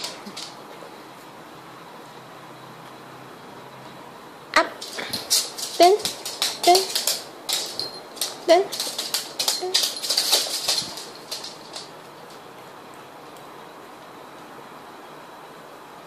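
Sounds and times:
dog claws clicking on hardwood floor: 0.0 - 0.6, 4.8 - 12.5.

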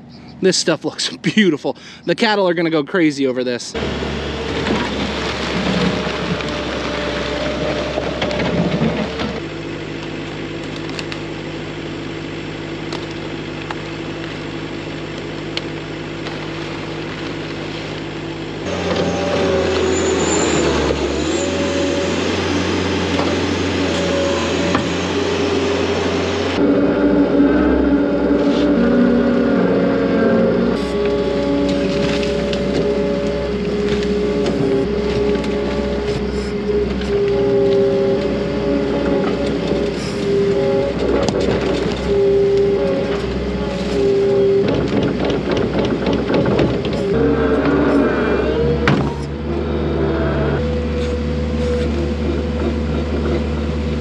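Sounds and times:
skid steer engine running under load: 3.7 - 54.0.

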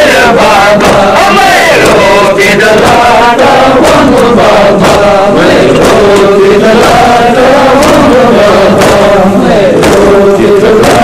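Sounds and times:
men chanting a lament: 0.0 - 11.0
sharp strikes: 0.0 - 11.0.

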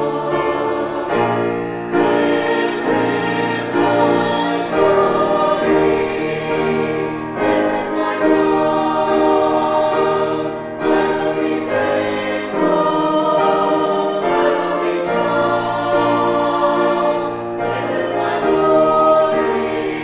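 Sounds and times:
grand piano accompaniment: 0.0 - 20.0
mixed choir singing: 0.0 - 20.0.

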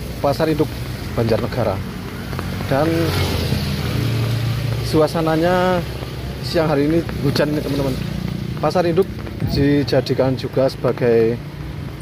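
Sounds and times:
traffic on wet street: 0.0 - 12.0
motorcycle passing: 0.1 - 12.0.

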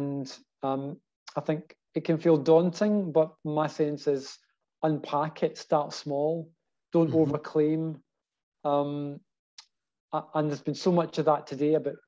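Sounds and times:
man saying um: 7.0 - 7.5.

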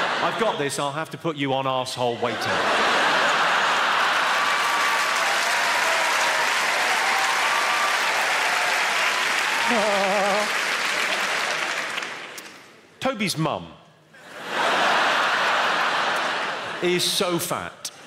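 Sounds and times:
audience laughing and applauding: 0.0 - 0.7, 2.2 - 12.7, 14.2 - 17.4.

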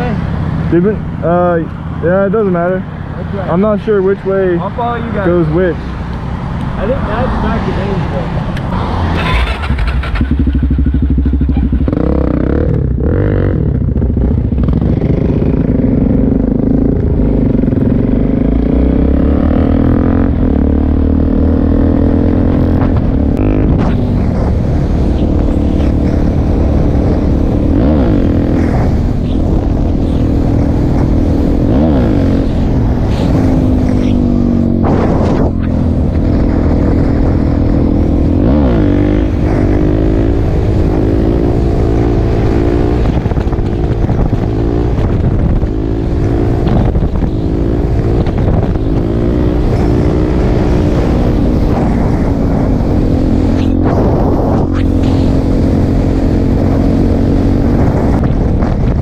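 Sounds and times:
motorcycle engine revving through gears: 8.5 - 59.0.

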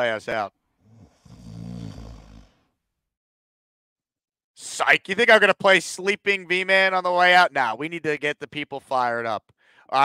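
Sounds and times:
man snoring: 0.8 - 2.8.

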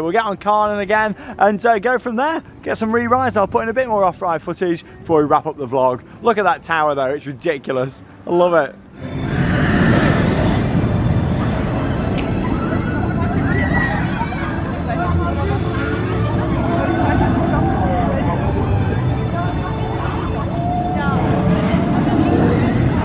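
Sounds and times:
roller coaster rumbling on track: 8.9 - 23.0
people's voices: 9.4 - 23.0.

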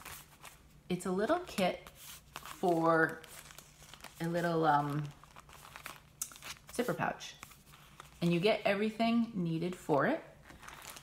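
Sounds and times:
plastic packaging crinkling: 0.0 - 8.6, 10.4 - 11.0.

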